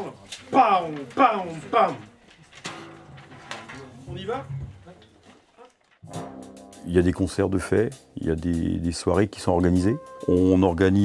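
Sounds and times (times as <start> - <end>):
wind band held notes: 9.8 - 10.8.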